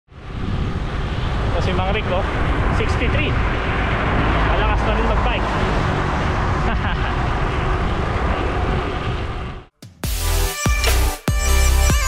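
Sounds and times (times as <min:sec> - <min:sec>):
heavy low rumble: 0:00.1 - 0:09.7
wind rushing over microphone: 0:00.1 - 0:09.7
person laughing: 0:06.6 - 0:07.4.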